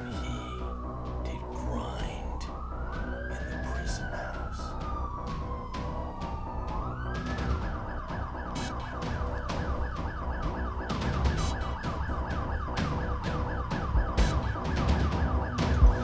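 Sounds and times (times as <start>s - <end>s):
police siren wailing and yelping: 0.0s - 16.0s.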